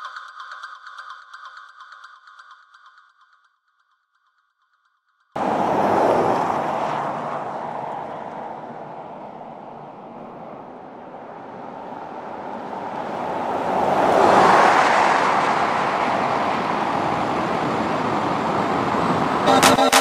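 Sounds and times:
car driving past: 0:05.4 - 0:19.8
music with sharp regular beat: 0:19.5 - 0:20.0.

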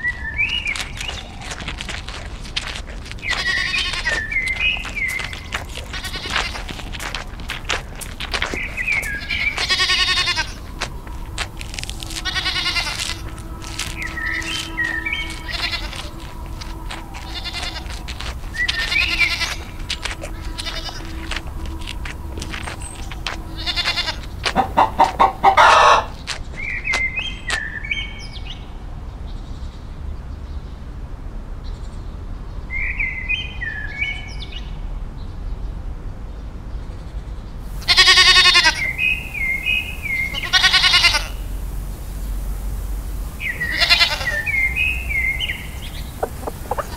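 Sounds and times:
goats bleating: 0:01.4 - 0:26.1, 0:37.8 - 0:39.2, 0:40.2 - 0:41.8, 0:43.3 - 0:44.9, 0:46.0 - 0:46.9
bird chirps: 0:03.2 - 0:28.1, 0:38.6 - 0:46.9.

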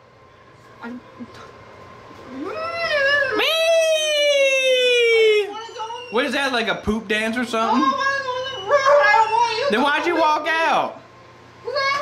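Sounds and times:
person whining vocal cry: 0:02.3 - 0:05.6.

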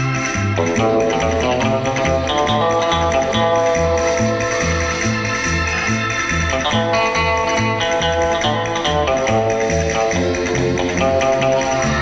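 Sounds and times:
guitar instrumental music: 0:00.0 - 0:12.0
steady bass beat: 0:00.0 - 0:12.0.

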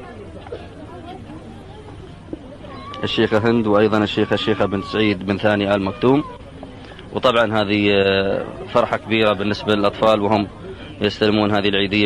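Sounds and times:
children's voices: 0:00.0 - 0:06.9
crowd chatter: 0:00.0 - 0:12.0.

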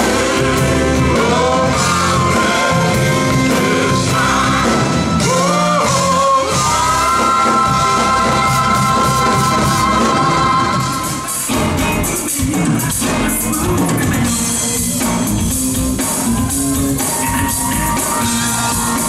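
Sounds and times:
bass and drums groove: 0:00.0 - 0:19.0
live band playing: 0:00.0 - 0:19.0.

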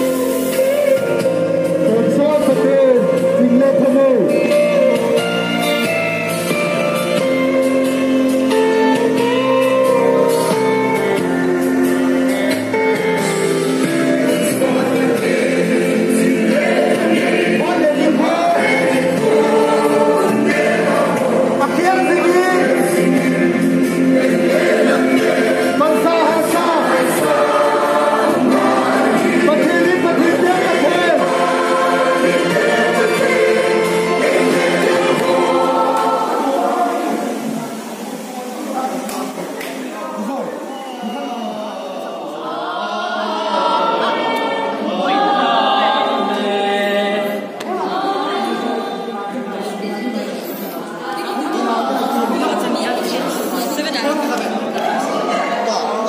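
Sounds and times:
male vocal group singing: 0:00.0 - 0:56.0.

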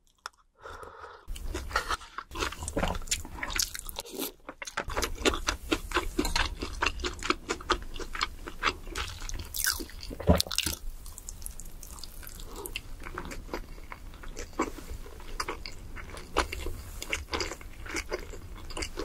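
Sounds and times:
person chewing crunchy food: 0:00.0 - 0:19.0.

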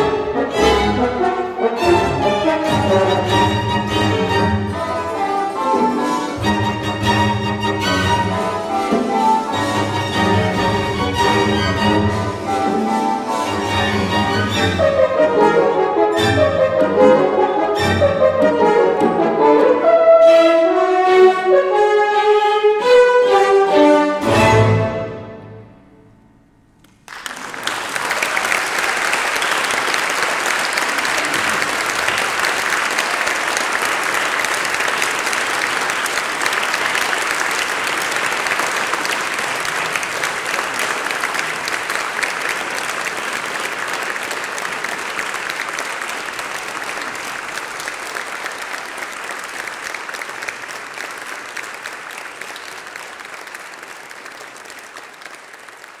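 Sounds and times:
audience applause: 0:26.8 - 0:56.0.

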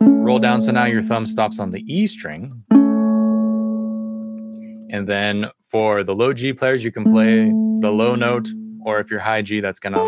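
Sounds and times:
ukulele notes ringing: 0:00.0 - 0:05.0, 0:06.9 - 0:09.0.

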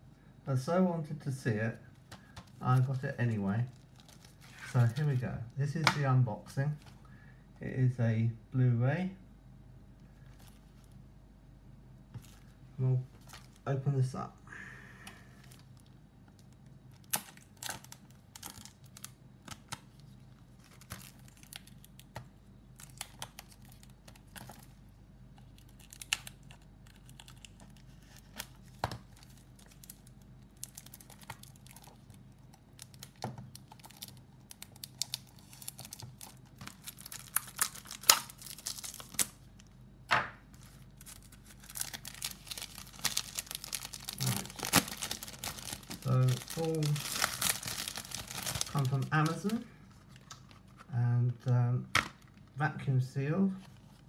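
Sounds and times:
plastic crinkling: 0:02.1 - 0:05.2, 0:15.3 - 0:39.7, 0:40.5 - 0:50.9.

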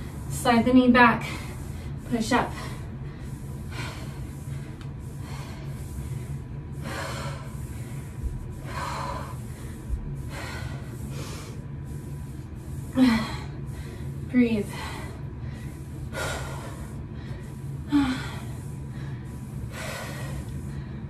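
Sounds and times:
woman breathing hard: 0:01.2 - 0:21.0.

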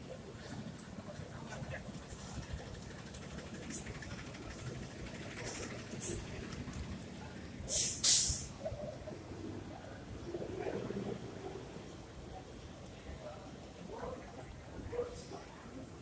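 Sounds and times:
street traffic rumble: 0:00.0 - 0:16.0
loud short hisses: 0:07.7 - 0:08.6.

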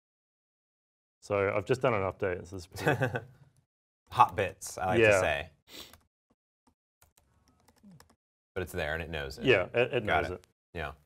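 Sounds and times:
computer keyboard typing: 0:07.0 - 0:08.2.

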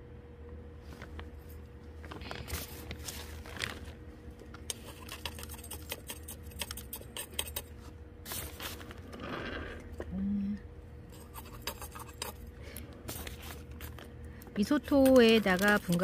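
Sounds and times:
metal spoon scraping: 0:11.1 - 0:12.4.

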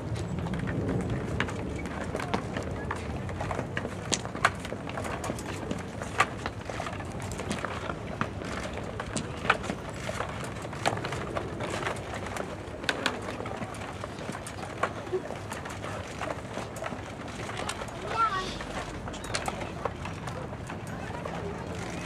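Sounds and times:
steady background noise: 0:00.0 - 0:22.0.

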